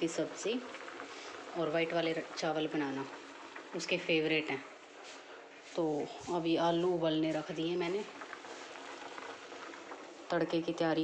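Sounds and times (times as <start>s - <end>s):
water boiling in a pot: 0.0s - 11.0s.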